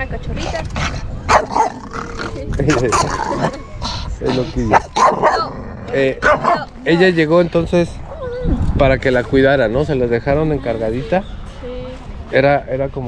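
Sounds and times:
people's voices: 0.0s - 13.0s
dog barking and yipping: 1.3s - 1.8s, 4.3s - 5.6s, 6.2s - 6.8s.

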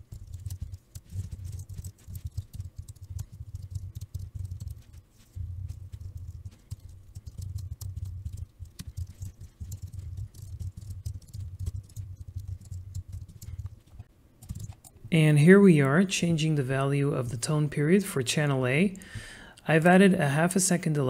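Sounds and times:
fast typing on keyboard: 0.0s - 15.0s.

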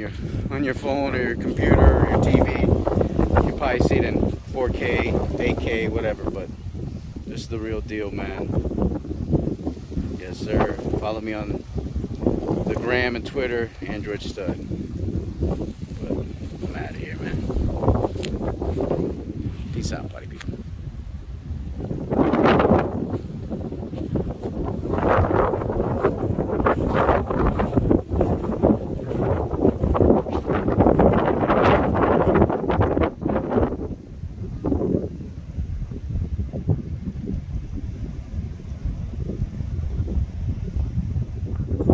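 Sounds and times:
wind buffeting microphone: 0.0s - 41.9s.

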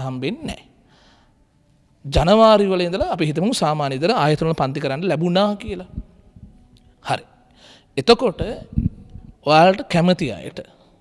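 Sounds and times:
faint intake of breath: 0.8s - 1.5s, 7.5s - 8.0s.

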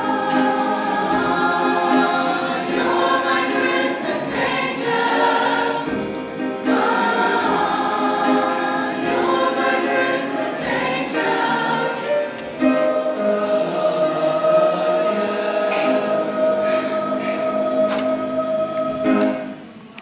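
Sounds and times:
mixed choir singing: 0.0s - 19.8s.

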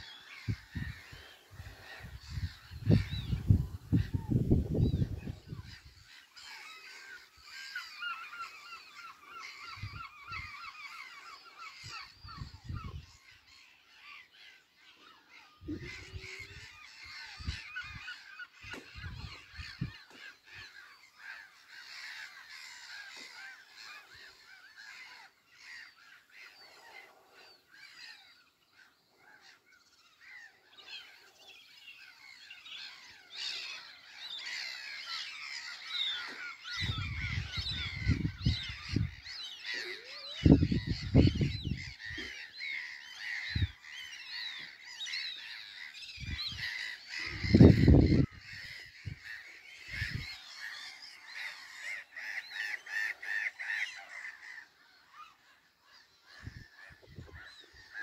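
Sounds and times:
birds chirping and trilling: 0.0s - 58.0s.

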